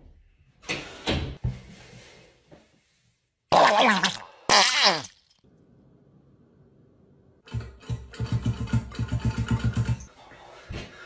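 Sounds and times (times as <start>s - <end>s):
long loud fart: 3.5s - 5.2s.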